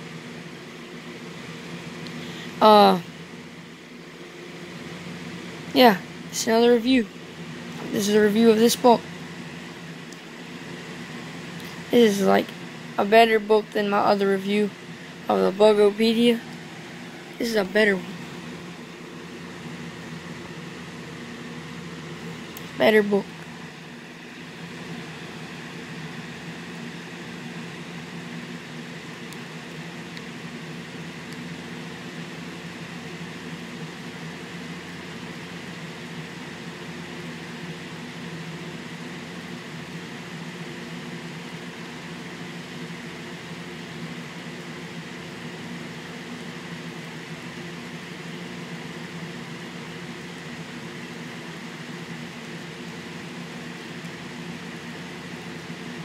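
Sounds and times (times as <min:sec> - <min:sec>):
steady machine hum: 0:00.0 - 0:56.0.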